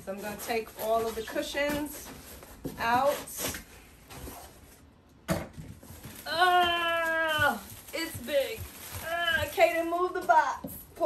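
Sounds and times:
foam and cardboard handling: 0:00.0 - 0:11.0.

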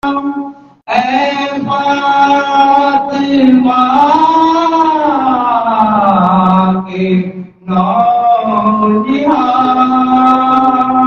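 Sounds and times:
man singing long notes: 0:00.0 - 0:11.0.

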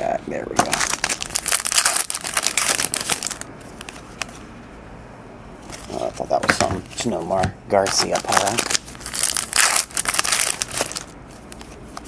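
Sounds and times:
cards and packaging crinkling: 0:00.5 - 0:04.4, 0:07.8 - 0:12.0.

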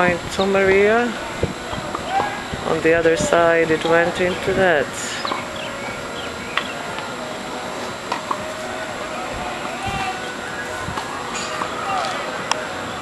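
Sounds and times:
distant talking: 0:00.0 - 0:13.0
outdoor background noise: 0:00.0 - 0:13.0.

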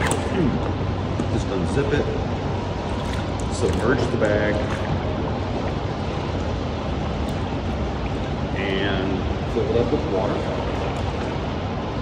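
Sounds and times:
indoor pool hall din: 0:00.0 - 0:12.0
pool water rushing: 0:00.0 - 0:12.0.

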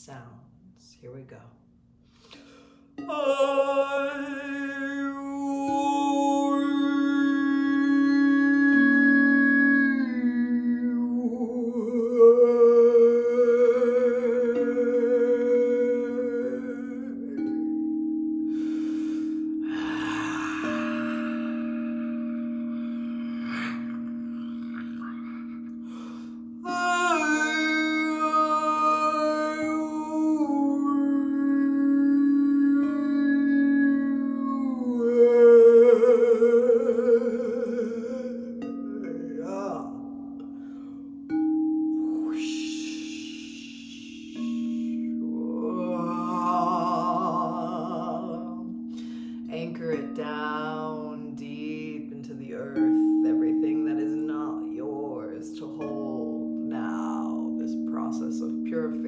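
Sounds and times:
woman singing wavering tones: 0:00.0 - 0:59.0.

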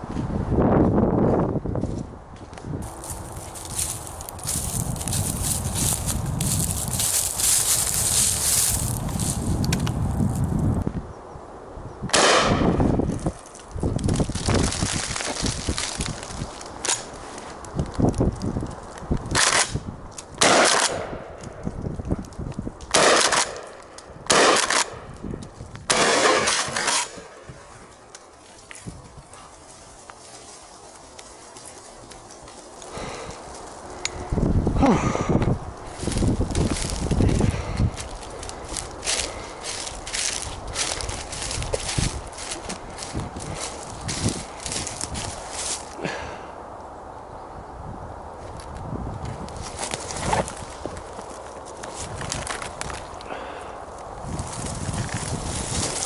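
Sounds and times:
shotgun shots echoing: 0:12.1 - 0:12.7, 0:20.4 - 0:21.1, 0:22.9 - 0:23.7, 0:24.3 - 0:25.0, 0:25.9 - 0:27.2.

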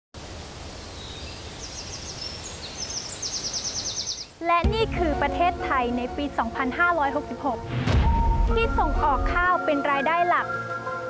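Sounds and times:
steady background hiss: 0:00.2 - 0:07.6.

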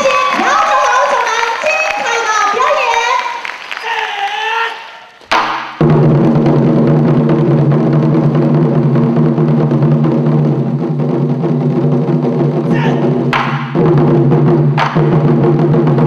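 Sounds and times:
barrel drum roll: 0:05.3 - 0:16.0.

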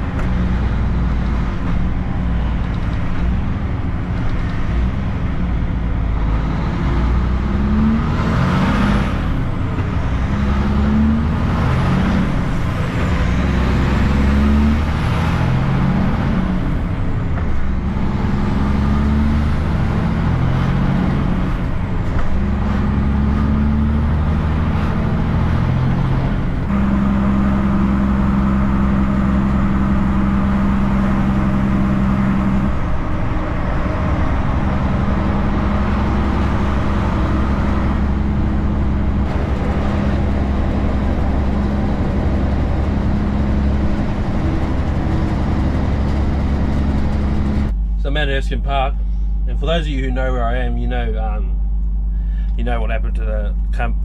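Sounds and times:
truck diesel engine pulling: 0:00.0 - 0:54.0
tyre and road noise: 0:00.0 - 0:54.0.

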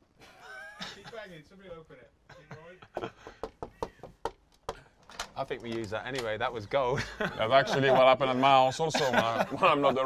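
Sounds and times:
knocking on door: 0:03.3 - 0:04.8.

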